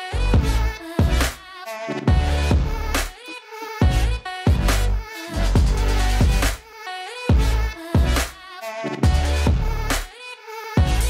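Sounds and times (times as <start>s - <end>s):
electronic music with deep bass: 0.0s - 3.2s, 3.8s - 6.6s, 7.3s - 10.1s, 10.8s - 11.0s.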